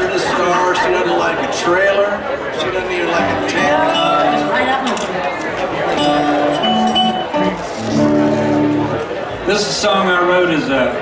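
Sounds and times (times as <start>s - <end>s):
band playing short held notes: 5.9s - 9.2s.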